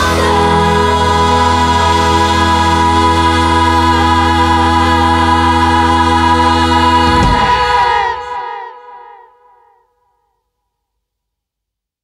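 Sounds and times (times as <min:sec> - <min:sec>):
rock band held chord: 0:00.0 - 0:09.0.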